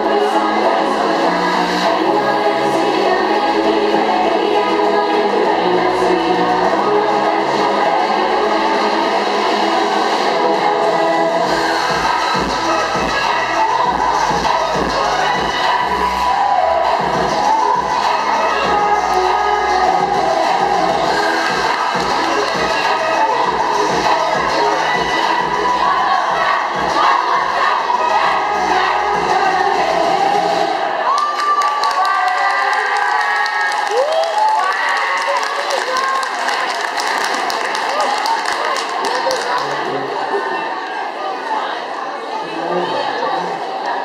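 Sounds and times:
pop dance music with heavy beat: 0.0 - 31.0
children shouting: 24.1 - 29.2
audience cheering: 30.8 - 40.2.

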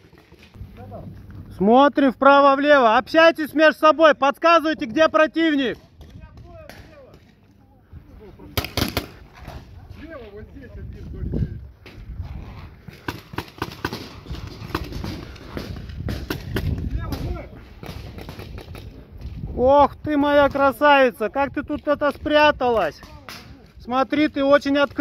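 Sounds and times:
wind rumble: 7.8 - 13.4, 14.0 - 20.8
paintball markers firing: 8.6 - 9.2, 12.9 - 18.9.

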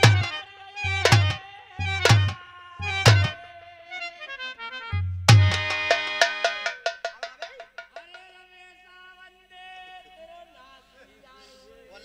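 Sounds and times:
heavy drum stroke: 0.0 - 3.4, 5.0 - 8.2
harmonium chord: 0.0 - 3.5, 4.4 - 6.8
ringing metallic strikes: 5.3 - 8.2.

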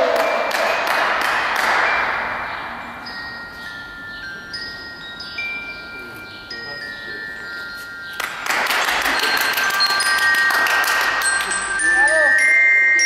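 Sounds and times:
people clapping: 0.0 - 2.1, 8.1 - 12.1
bell-like mallet percussion melody: 0.0 - 13.0.

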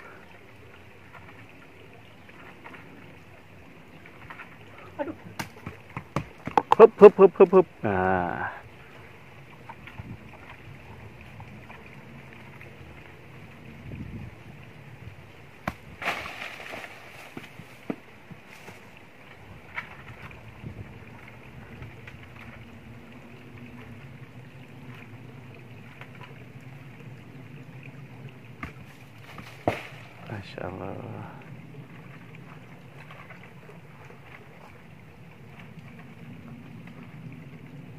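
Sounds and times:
outdoor rumble and hiss: 0.0 - 37.9.

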